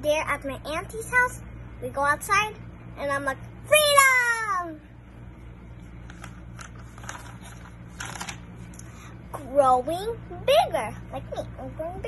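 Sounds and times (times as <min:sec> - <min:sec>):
girl shouting: 0:03.7 - 0:04.8.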